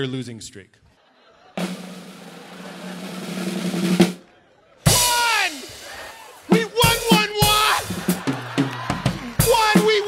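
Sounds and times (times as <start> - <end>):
drum roll on drum kit: 1.6 - 4.2
person shouting: 4.9 - 7.9, 9.2 - 10.0.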